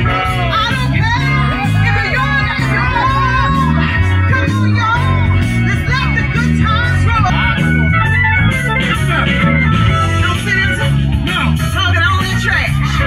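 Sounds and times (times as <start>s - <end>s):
organ-like lead: 0.0s - 13.0s
repeating bass line: 0.0s - 13.0s.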